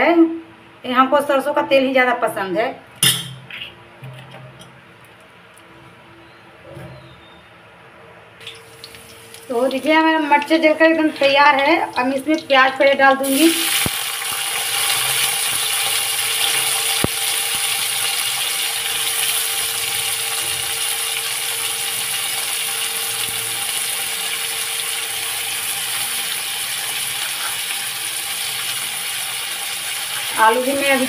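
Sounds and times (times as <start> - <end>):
onions sizzling in hot oil: 8.4 - 31.0.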